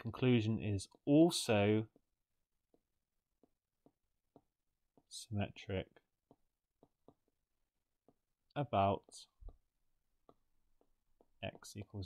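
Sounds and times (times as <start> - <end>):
stylus tapping on drawing tablet: 0.8 - 12.0.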